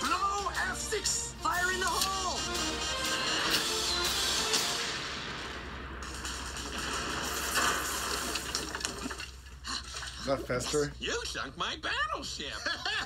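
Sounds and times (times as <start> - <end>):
film trailer music: 0.0 - 8.9.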